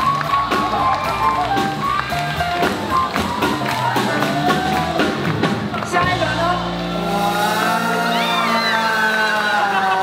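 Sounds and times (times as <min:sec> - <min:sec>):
driving drum beat: 0:00.0 - 0:08.3
swing jazz band playing: 0:00.0 - 0:08.6.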